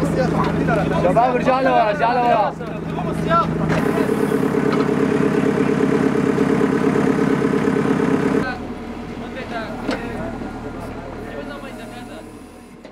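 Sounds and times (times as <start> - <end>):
diesel engine running: 0.0 - 12.9
faint voices: 8.3 - 12.9.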